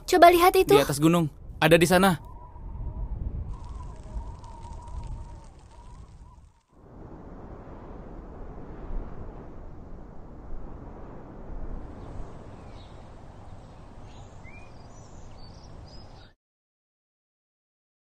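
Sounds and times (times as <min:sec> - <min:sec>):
wind rumbling on microphone: 0:00.0 - 0:16.4.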